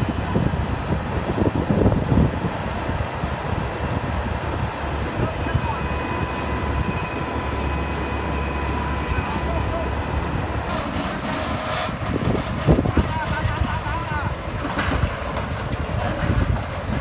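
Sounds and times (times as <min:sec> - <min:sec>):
diesel engine running: 0:00.0 - 0:17.0
men's voices: 0:08.6 - 0:10.5, 0:12.7 - 0:16.6.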